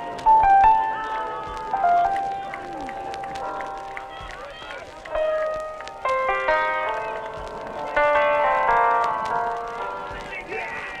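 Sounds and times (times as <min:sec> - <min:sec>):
faint background music: 0:00.0 - 0:11.0
faint voices calling: 0:00.0 - 0:11.0.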